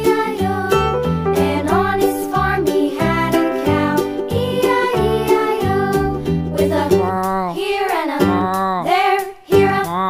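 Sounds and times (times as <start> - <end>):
backing music: 0.0 - 10.0
person singing: 4.6 - 10.0.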